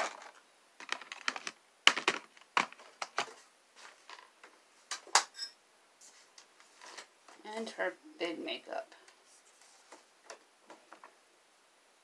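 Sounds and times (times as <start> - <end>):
items clicking against plastic bins: 0.0 - 5.3.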